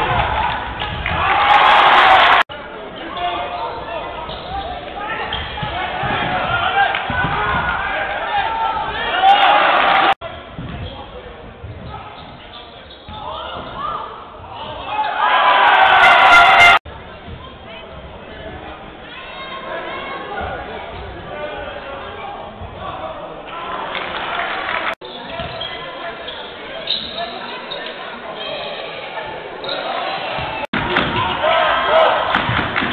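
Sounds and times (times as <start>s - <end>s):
indoor hall noise: 0.0s - 32.9s.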